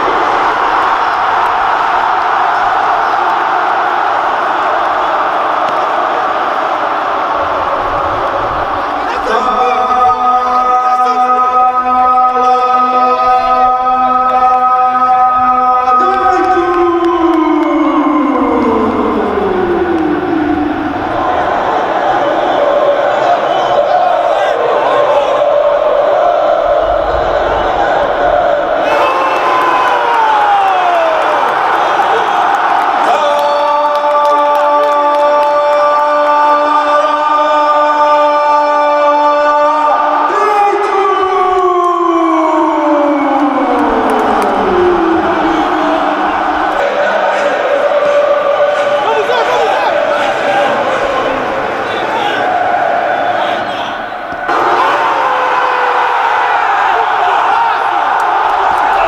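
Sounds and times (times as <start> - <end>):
crowd noise: 0.0 - 59.0
siren winding down: 16.4 - 21.3, 42.0 - 46.6
commentator's long goal shout: 28.8 - 59.0.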